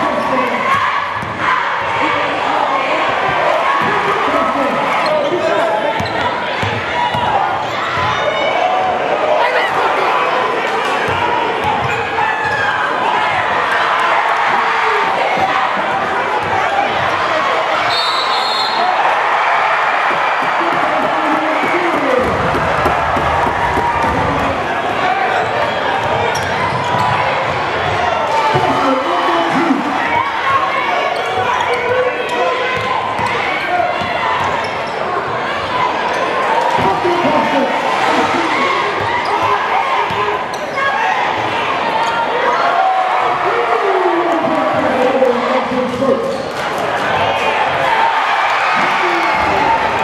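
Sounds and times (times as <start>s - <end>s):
crowd shouting: 0.0s - 50.0s.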